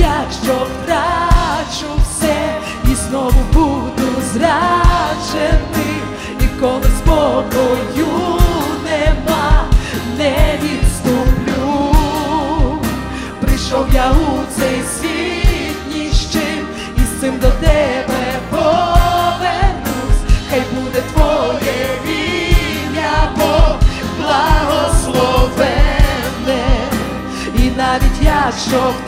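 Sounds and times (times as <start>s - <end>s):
woman singing into microphone: 0.0s - 21.8s, 22.5s - 29.0s
band with acoustic guitar: 0.0s - 29.0s.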